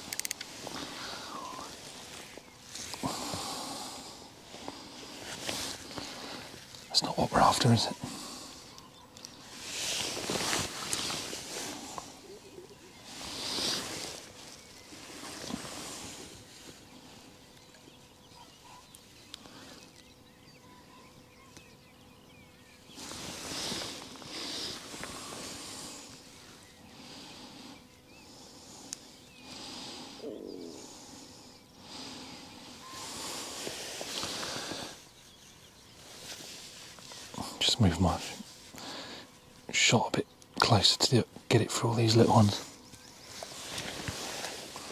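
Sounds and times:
clothing and hands rustling: 9.5 - 12.2.

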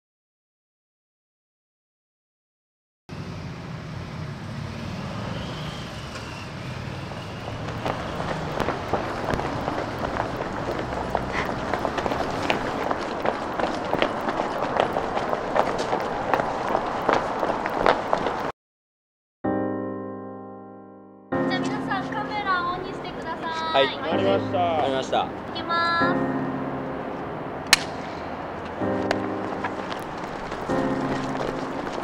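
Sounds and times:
street traffic noise: 3.1 - 18.5, 21.4 - 32.0
running footsteps on pavement: 7.1 - 18.5, 28.5 - 32.0.

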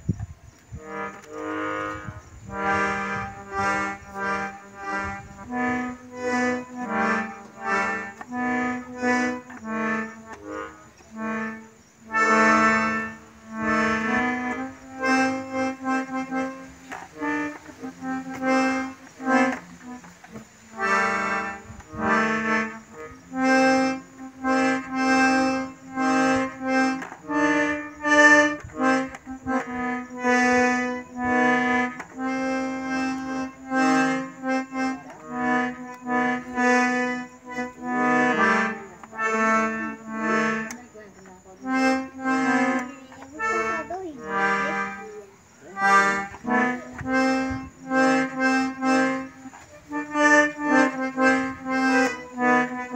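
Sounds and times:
piano accordion tune: 0.0 - 52.9.

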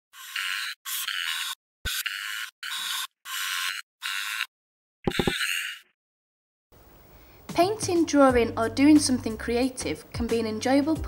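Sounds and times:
marker pen drawing on paper: 0.1 - 4.5.

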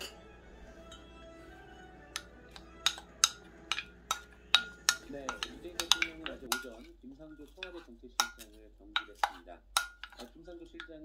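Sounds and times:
spoon stirring peppers in mug: 2.1 - 11.0
spoon clicking against mug: 2.2 - 6.7.

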